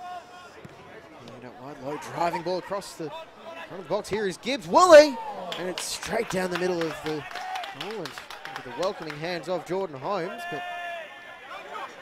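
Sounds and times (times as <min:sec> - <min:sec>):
man's voice: 0:03.7 - 0:10.8
person shouting: 0:04.7 - 0:05.5.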